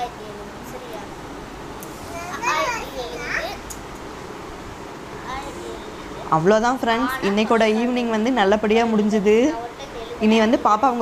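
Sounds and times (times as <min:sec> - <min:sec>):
young child speaking: 0:00.0 - 0:01.2, 0:02.0 - 0:03.8, 0:05.2 - 0:06.4, 0:09.6 - 0:10.2.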